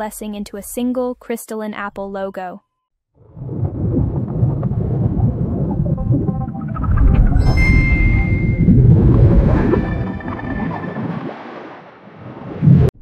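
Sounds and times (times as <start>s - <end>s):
deep heavy rumble: 3.3s - 10.7s
cinematic music: 5.7s - 11.9s
high held tone: 6.3s - 11.7s.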